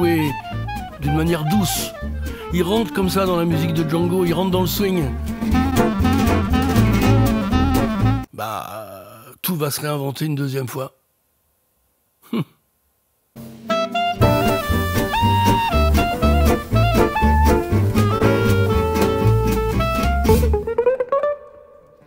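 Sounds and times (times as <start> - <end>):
jazz swing combo playing: 0.0 - 8.3, 13.4 - 21.6
electric guitar melody: 0.1 - 8.3, 13.4 - 22.0.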